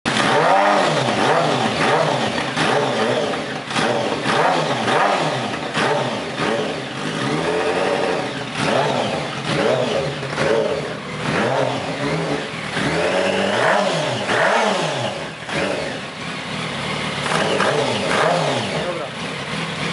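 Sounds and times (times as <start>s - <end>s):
engine revving in short blips: 0.1s - 19.1s.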